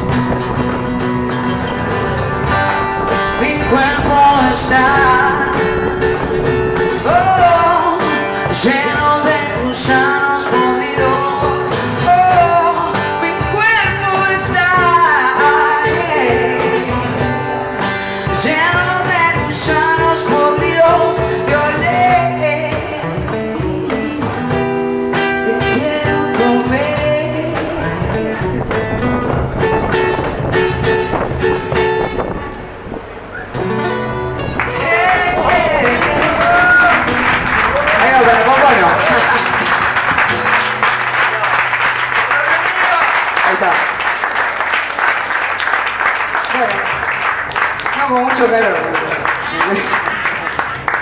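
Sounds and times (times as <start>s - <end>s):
percussion: 0.0s - 32.4s
strummed acoustic guitar: 0.0s - 44.0s
woman singing: 3.3s - 6.3s, 6.9s - 17.7s, 18.3s - 28.8s.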